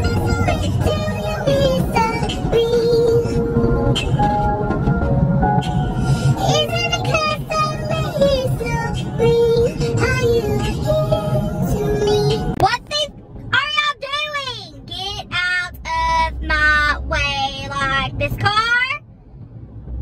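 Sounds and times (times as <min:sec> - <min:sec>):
backing music: 0:00.0 - 0:12.6.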